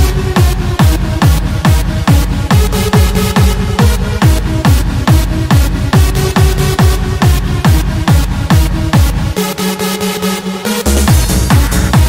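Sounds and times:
kick drum: 0.0s - 9.4s, 11.0s - 12.0s
electronic dance music: 0.0s - 12.0s.

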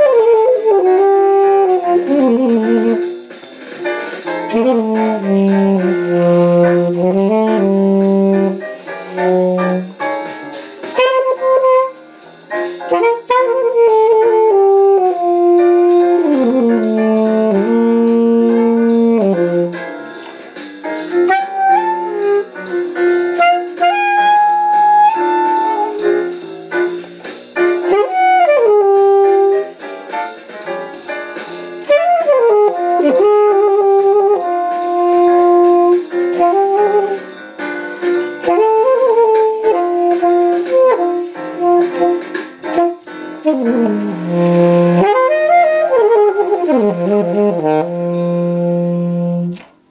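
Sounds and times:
saxophone playing jazz: 0.0s - 30.4s, 31.8s - 49.9s.

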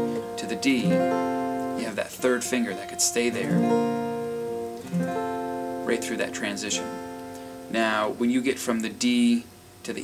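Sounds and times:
acoustic guitar chords strummed: 0.0s - 9.4s.

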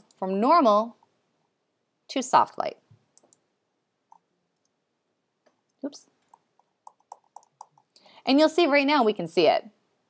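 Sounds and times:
computer mouse clicks: 3.1s - 3.5s, 4.1s - 4.8s, 5.4s - 8.0s.

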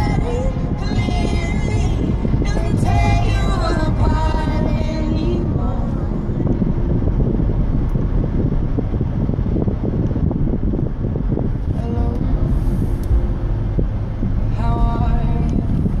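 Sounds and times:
car cabin road and engine rumble: 0.0s - 16.0s.

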